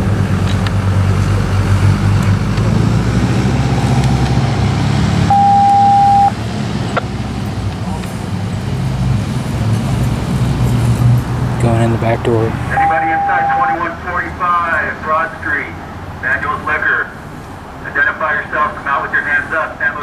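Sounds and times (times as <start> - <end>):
vehicle engine idling: 0.0 - 11.0
loud steady beep: 3.4 - 6.4, 12.7 - 14.0.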